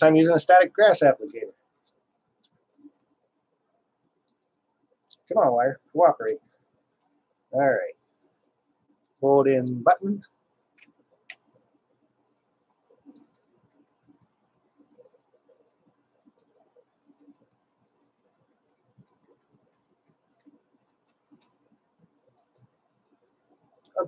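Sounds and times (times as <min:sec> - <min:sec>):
faint ticks and clicks: 0:00.0 - 0:24.0.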